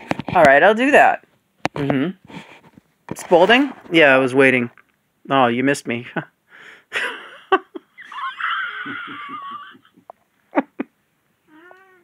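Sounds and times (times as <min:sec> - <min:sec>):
cat meowing: 0:11.5 - 0:12.0.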